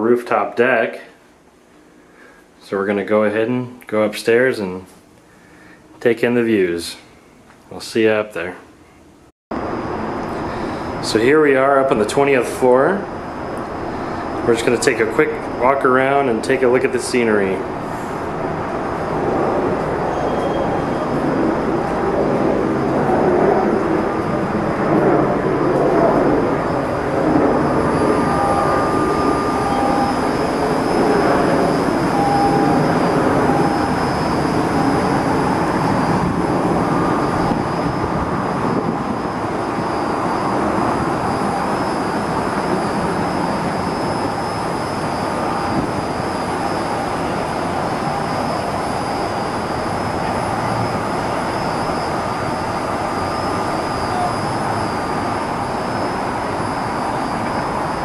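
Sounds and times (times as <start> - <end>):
traffic drone: 9.6 - 58.0.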